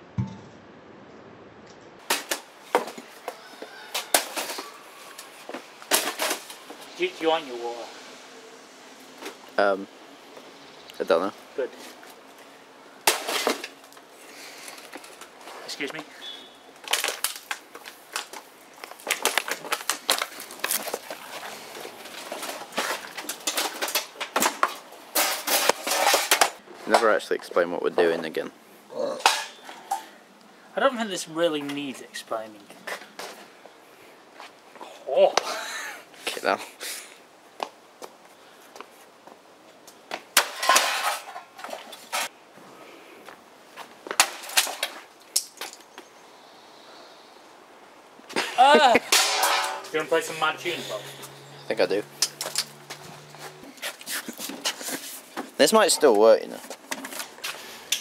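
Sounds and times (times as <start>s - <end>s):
branch smashing toaster: 40.4s - 41.4s, 49.0s - 50.0s.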